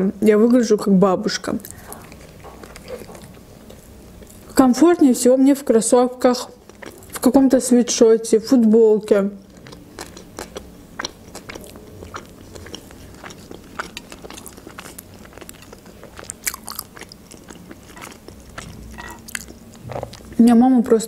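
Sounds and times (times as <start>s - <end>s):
person chewing food: 1.6s - 4.6s, 6.5s - 7.3s, 9.4s - 20.4s.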